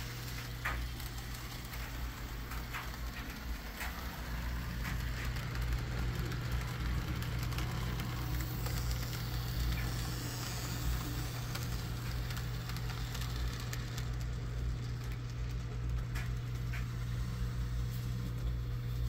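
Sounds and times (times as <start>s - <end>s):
model train electric hum: 0.0s - 19.0s
wheels clicking and rattling on rails: 0.0s - 19.0s.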